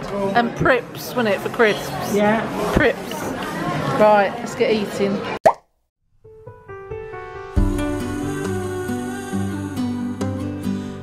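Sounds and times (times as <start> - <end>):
soft music with plucked notes: 6.3 - 11.0.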